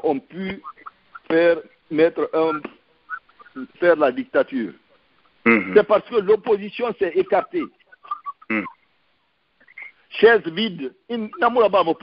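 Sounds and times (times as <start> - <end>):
faint mouth sounds: 7.7 - 8.9
man saying mm-hmm: 8.5 - 8.7.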